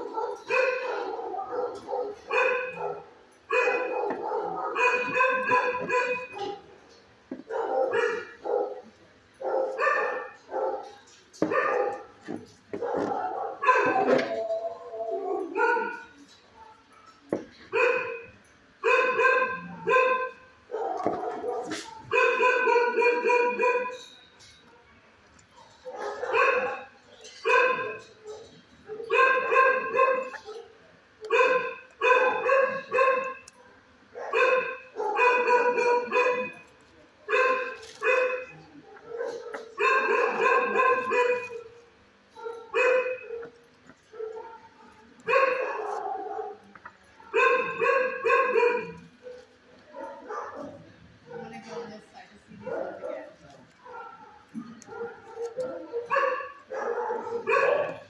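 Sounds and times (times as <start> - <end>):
dog barking: 0.0 - 6.7, 7.4 - 14.2, 15.3 - 24.0, 25.5 - 51.9, 52.6 - 58.0.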